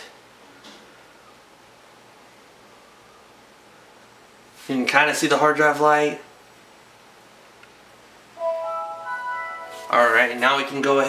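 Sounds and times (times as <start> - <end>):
computer startup chime: 8.4 - 10.9.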